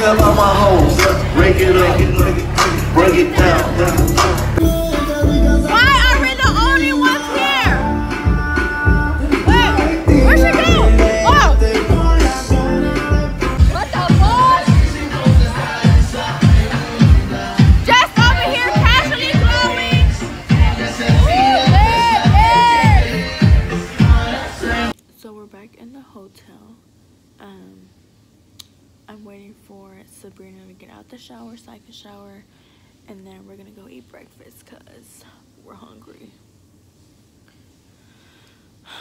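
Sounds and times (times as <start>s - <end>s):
deep kick drum beat: 0.0s - 7.0s, 7.7s - 24.2s
club dance music: 0.0s - 24.9s
person singing or shouting: 4.8s - 12.8s, 13.6s - 15.6s, 17.6s - 23.6s.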